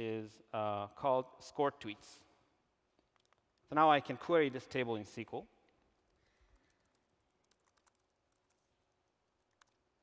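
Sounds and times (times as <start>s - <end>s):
typing on laptop keyboard: 6.0s - 8.8s, 9.4s - 10.0s.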